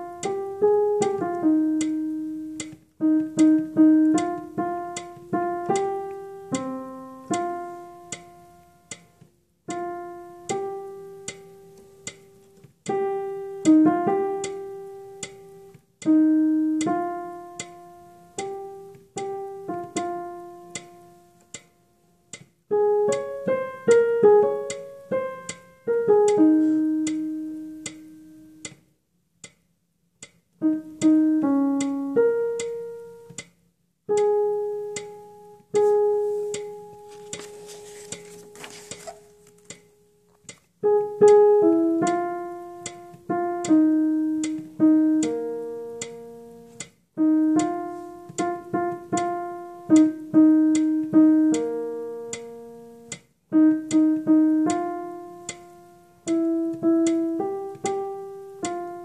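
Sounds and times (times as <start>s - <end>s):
piano single notes: 0.0s - 21.7s, 34.1s - 59.0s.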